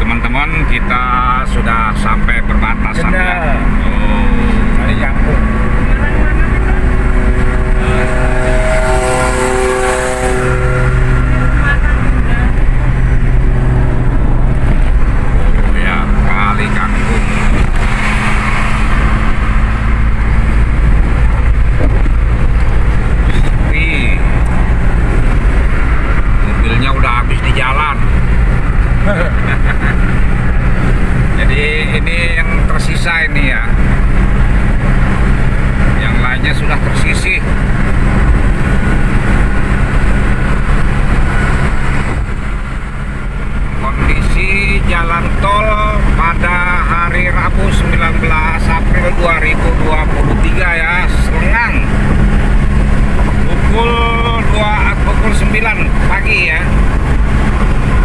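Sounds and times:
car tyres and engine drone: 0:00.0 - 0:58.0.

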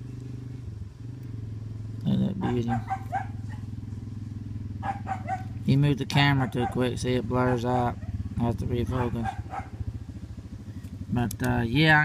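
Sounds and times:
low motor hum: 0:00.0 - 0:12.0
dog barking: 0:02.4 - 0:03.7, 0:04.8 - 0:05.6, 0:06.3 - 0:08.1, 0:08.8 - 0:09.8.

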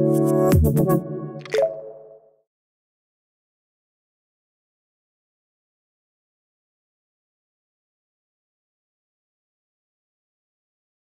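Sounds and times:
water-drop plop effect: 0:01.4 - 0:02.2.

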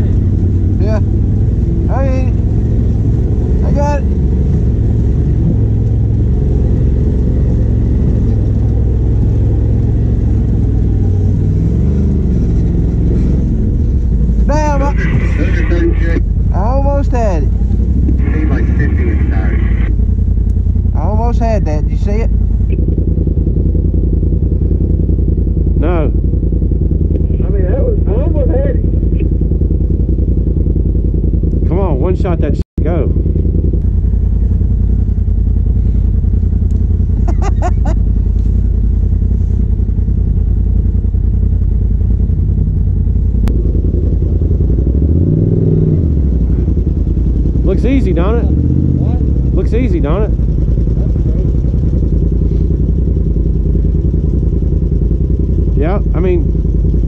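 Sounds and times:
engine running at low revs: 0:00.0 - 0:57.0.

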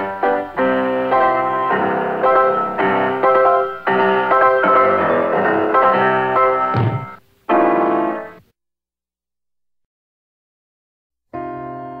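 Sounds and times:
piano playing chords: 0:00.0 - 0:08.4, 0:11.4 - 0:12.0.

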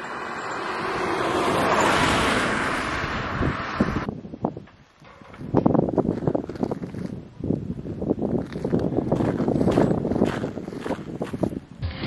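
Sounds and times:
wind buffeting microphone: 0:02.1 - 0:11.8.

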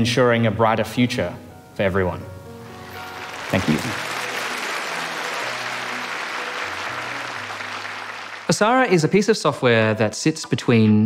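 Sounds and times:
quiet background music: 0:00.0 - 0:11.0
audience applauding: 0:02.8 - 0:09.1.

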